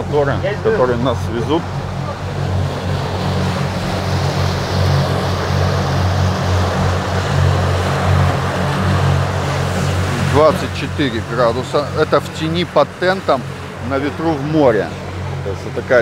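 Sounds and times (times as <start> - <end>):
churning wake rushing: 0.0 - 16.0
outboard motor droning: 0.0 - 16.0.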